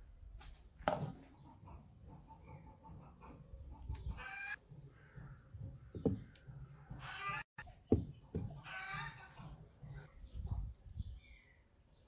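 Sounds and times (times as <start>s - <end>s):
hen clucking: 1.2s - 7.7s, 8.4s - 10.6s.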